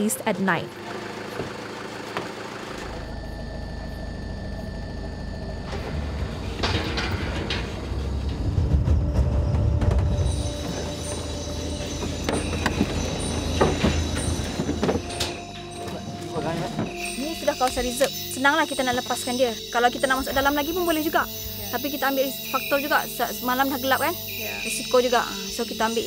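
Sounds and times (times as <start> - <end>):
car engine and tyres rumbling: 0.0 - 17.2
high insect chirps: 8.6 - 26.0.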